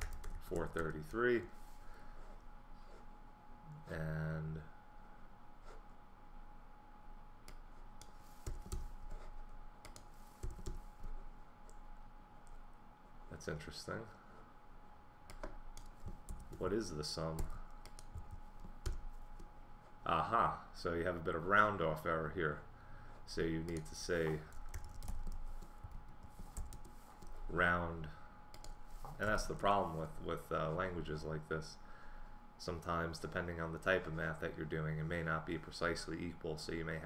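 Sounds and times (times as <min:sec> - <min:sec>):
computer keyboard typing: 0:00.0 - 0:01.0, 0:08.4 - 0:08.9, 0:09.8 - 0:10.8, 0:15.3 - 0:16.6, 0:17.4 - 0:19.5, 0:23.6 - 0:27.4.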